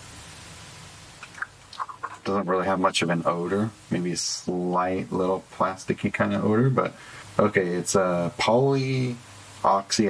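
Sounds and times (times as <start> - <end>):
mouth clicks: 1.2 - 2.4
person sniffing: 6.9 - 7.4.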